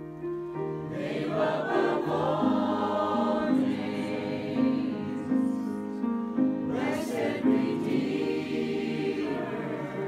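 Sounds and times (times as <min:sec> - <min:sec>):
mixed choir singing a carol: 0:00.9 - 0:10.0.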